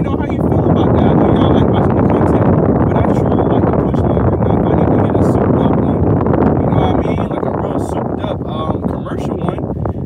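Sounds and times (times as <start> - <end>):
car air conditioner blowing: 0.0 - 10.0.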